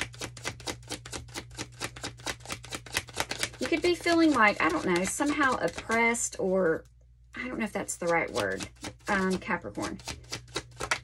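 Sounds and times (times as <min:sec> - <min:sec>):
cards shuffling with fast clicks: 0:00.0 - 0:06.2, 0:07.8 - 0:11.0.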